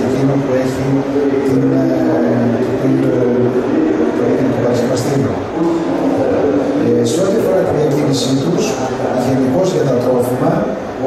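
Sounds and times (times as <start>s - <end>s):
man speaking over pa system: 0.0s - 11.0s.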